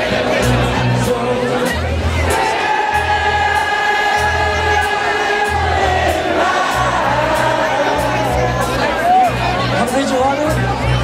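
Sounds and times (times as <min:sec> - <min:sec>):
crowd singing along: 0:00.0 - 0:10.0
bass guitar notes: 0:00.0 - 0:11.0.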